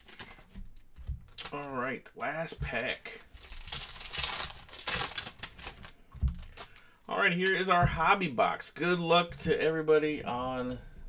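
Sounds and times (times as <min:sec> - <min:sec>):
foil wrapper tearing and crinkling: 0:03.1 - 0:06.8.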